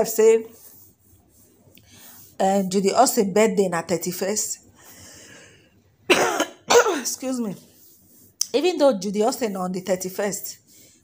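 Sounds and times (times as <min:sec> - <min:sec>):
person coughing: 0:06.1 - 0:07.2.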